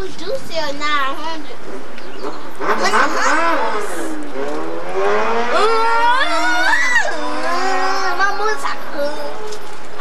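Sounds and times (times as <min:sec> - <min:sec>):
person drawn-out cry: 0:05.5 - 0:08.2.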